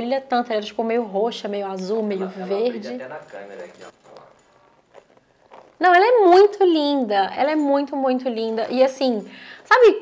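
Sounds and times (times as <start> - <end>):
people talking: 0.0 - 4.0, 5.8 - 10.0.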